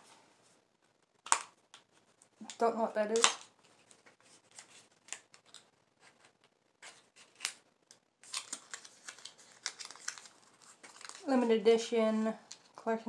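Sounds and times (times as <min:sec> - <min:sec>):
packaging rustling and crinkling: 0:03.1 - 0:07.6, 0:08.2 - 0:11.5.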